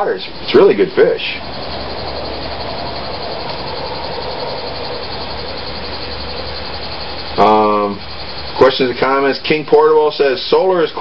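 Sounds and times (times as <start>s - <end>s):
mechanical drone with low hum: 0.0s - 11.0s.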